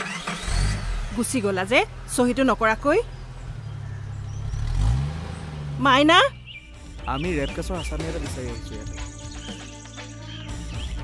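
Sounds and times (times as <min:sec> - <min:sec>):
car engine revving: 0:00.0 - 0:09.4.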